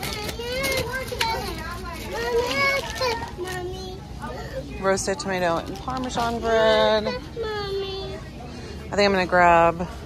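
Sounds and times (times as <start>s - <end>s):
young children talking: 0.0s - 9.0s
shop background noise: 0.0s - 10.0s.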